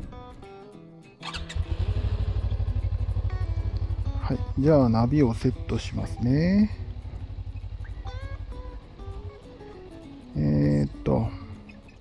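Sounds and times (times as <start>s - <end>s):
background music: 0.0s - 12.0s
motorcycle engine starting and idling: 1.2s - 12.0s.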